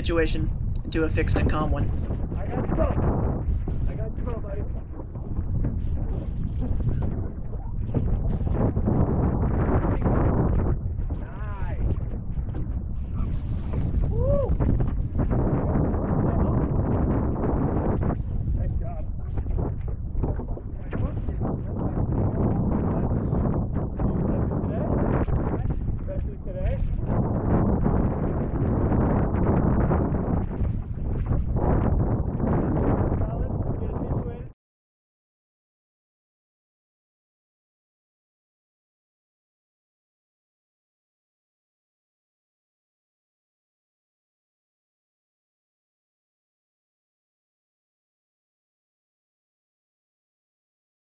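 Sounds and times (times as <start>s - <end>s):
wind buffeting microphone: 0.0s - 34.6s.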